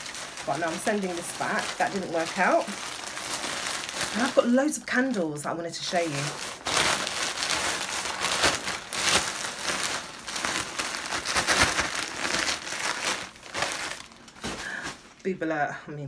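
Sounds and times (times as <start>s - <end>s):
plastic bag crinkling: 0.0s - 15.3s.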